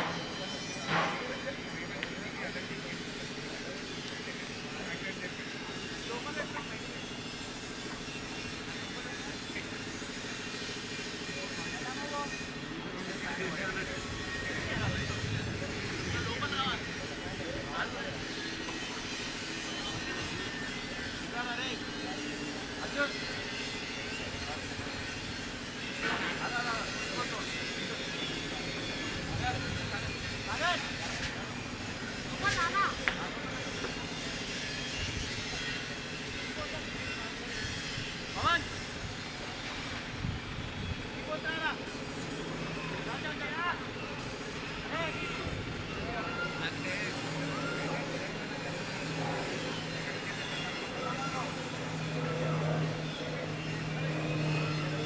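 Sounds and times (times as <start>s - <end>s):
low machine-like hum: 0.0s - 55.0s.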